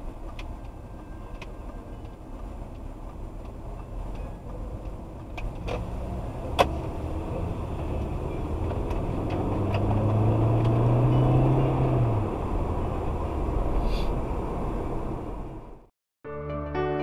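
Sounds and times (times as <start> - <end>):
car engine and tyre rumble: 0.0 - 15.9.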